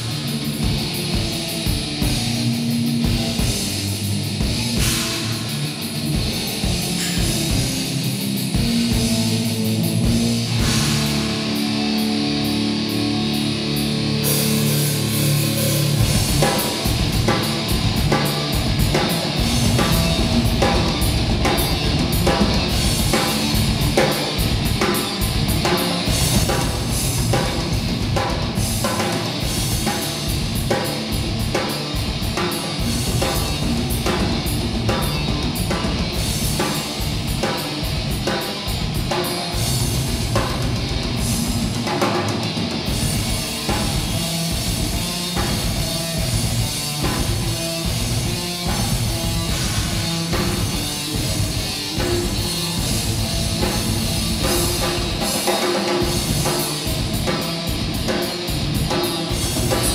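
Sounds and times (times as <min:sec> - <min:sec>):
drum kit beat: 0:00.0 - 0:59.9
electric guitar chords: 0:00.0 - 0:59.9.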